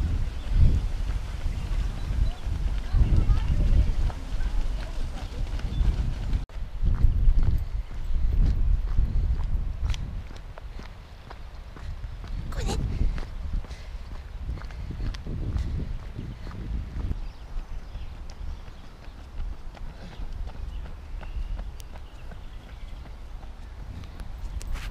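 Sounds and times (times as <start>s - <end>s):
footsteps: 0.0s - 17.2s, 18.2s - 24.9s
wind buffeting microphone: 0.0s - 24.9s.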